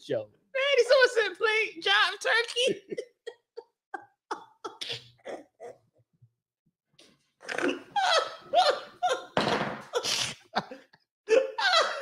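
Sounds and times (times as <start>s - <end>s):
woman laughing: 2.7s - 5.8s, 8.0s - 9.4s, 10.0s - 12.0s.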